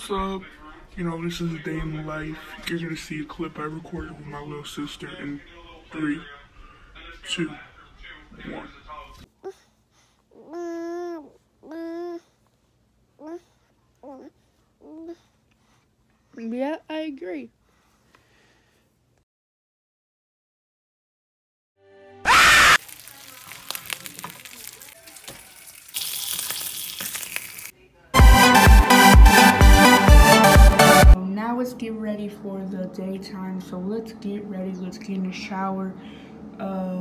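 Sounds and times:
food sizzling in a pan: 0:22.3 - 0:27.7.

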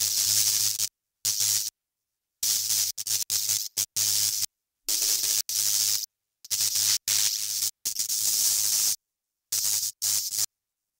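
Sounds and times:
hissing electronic static: 0:02.4 - 0:09.0.

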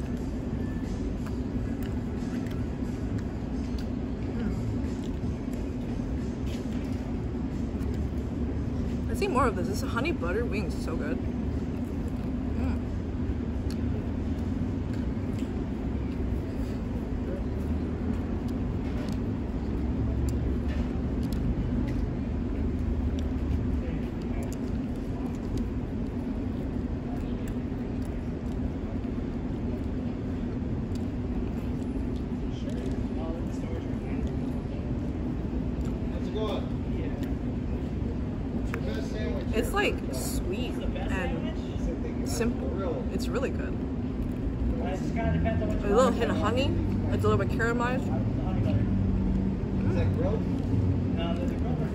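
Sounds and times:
chewing and handling food: 0:00.0 - 0:09.0, 0:10.7 - 0:39.6, 0:43.7 - 0:45.0, 0:48.5 - 0:51.9
road traffic rumble: 0:00.0 - 0:51.9.

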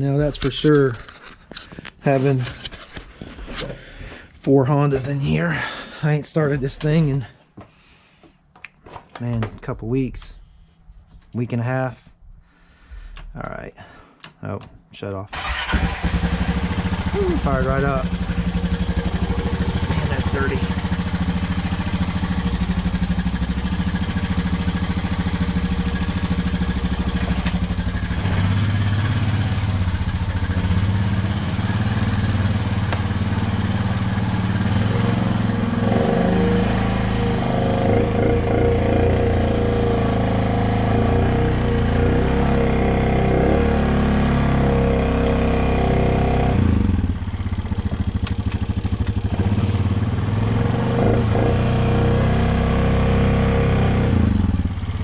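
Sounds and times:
atv engine running: 0:15.4 - 0:55.0.

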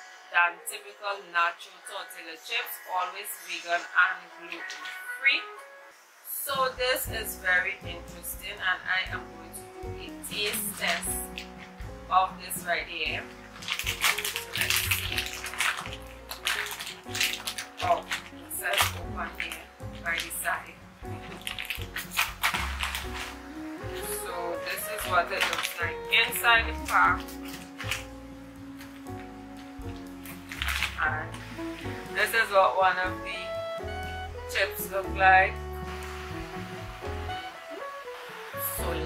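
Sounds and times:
soft guitar music: 0:06.6 - 0:39.0
plastic snack bag crinkling: 0:13.4 - 0:20.4, 0:21.1 - 0:32.0.

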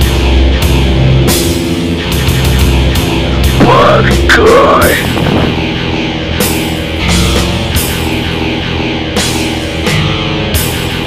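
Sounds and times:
heavy metal instrumental: 0:00.0 - 0:11.0.

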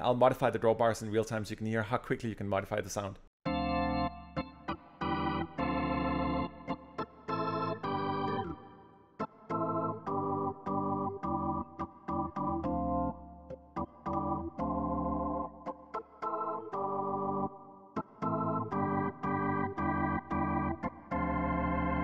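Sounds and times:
organ playing chords: 0:03.4 - 0:22.0.

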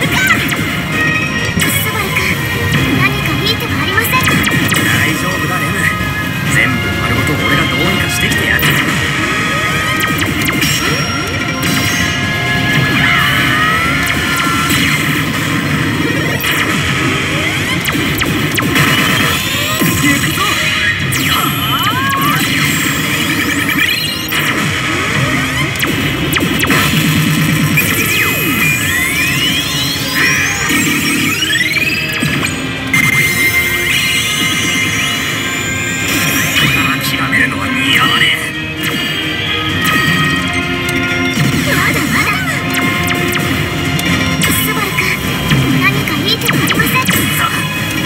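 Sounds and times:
slot machine battle music: 0:00.0 - 0:48.0.

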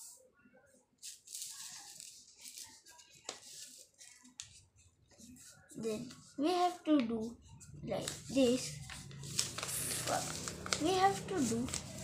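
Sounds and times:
paper rustling: 0:01.0 - 0:12.0
paper crackling sharply: 0:08.0 - 0:12.0.

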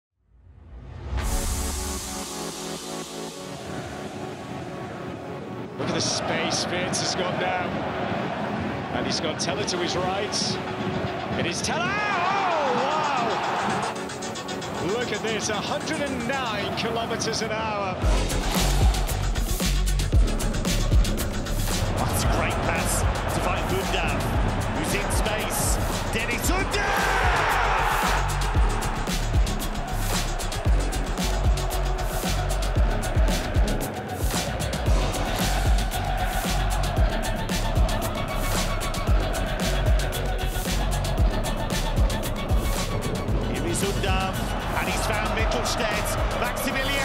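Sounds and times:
music with beat and deep bass: 0:12.0 - 0:16.6, 0:18.0 - 0:47.0.

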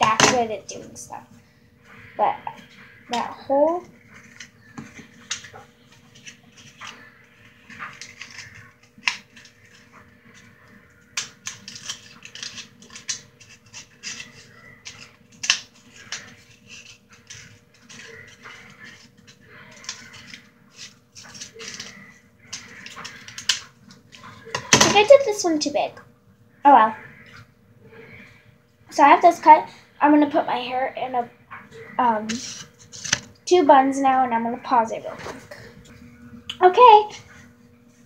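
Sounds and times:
paper liners crinkling: 0:04.0 - 0:25.2.

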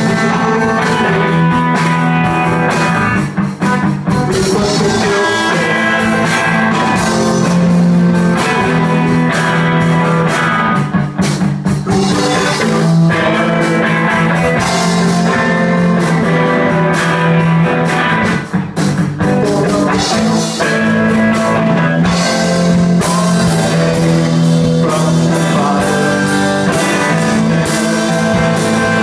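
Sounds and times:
drum kit: 0:00.0 - 0:29.0
electric guitar: 0:00.0 - 0:29.0.

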